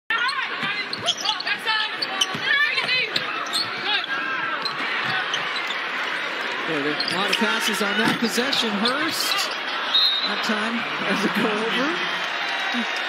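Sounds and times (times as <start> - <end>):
arena crowd noise: 0.1 - 13.0.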